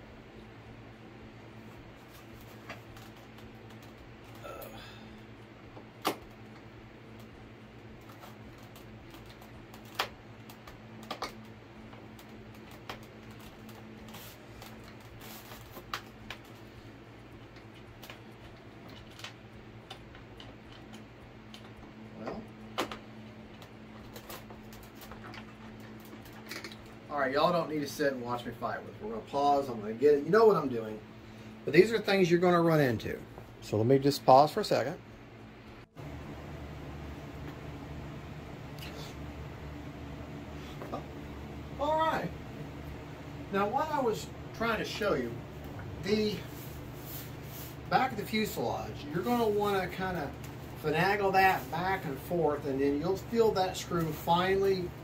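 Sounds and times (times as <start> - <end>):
low steady hum: 0.0 - 55.0.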